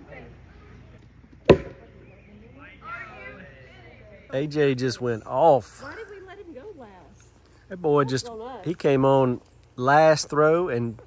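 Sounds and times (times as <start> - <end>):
faint voices: 0.0 - 9.5
game piece knocking: 1.5 - 1.8.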